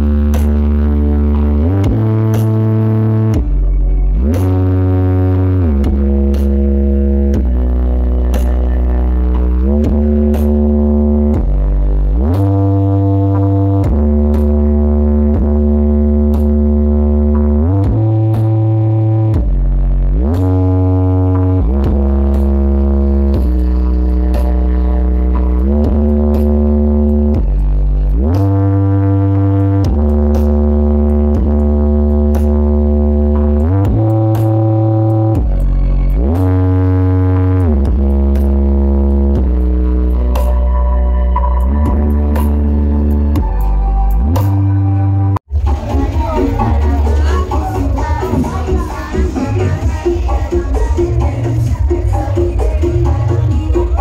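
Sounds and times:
deep sliding bass notes: 0.0s - 54.0s
loud electronic music: 0.0s - 54.0s.

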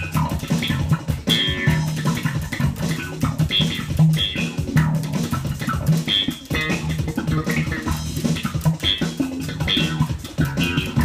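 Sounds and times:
electric bass guitar plucked notes: 0.0s - 11.0s.

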